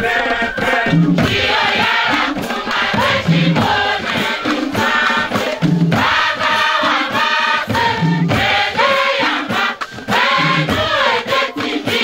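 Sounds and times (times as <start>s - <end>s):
hand drums beating: 0.0s - 12.0s
large choir singing: 0.0s - 12.0s.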